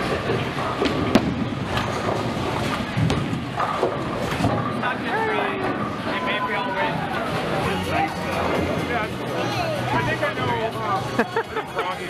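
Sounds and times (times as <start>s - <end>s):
balls and pins clacking: 0.0s - 6.2s
bowling balls rolling: 0.0s - 10.7s
crowd chatter: 0.0s - 12.0s.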